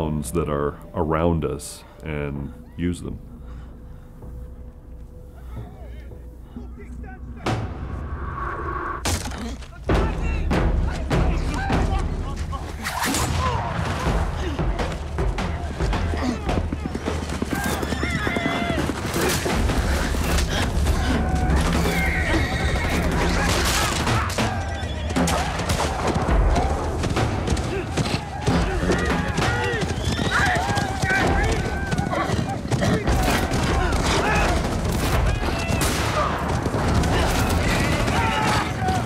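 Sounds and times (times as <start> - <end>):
horses galloping: 13.8 - 39.0
hoofbeats in snow: 14.0 - 39.0
horse whinnying: 17.5 - 19.5, 20.9 - 24.8, 28.5 - 34.6
rapid gunfire: 25.2 - 39.0
men yelling: 27.6 - 36.4, 37.0 - 39.0.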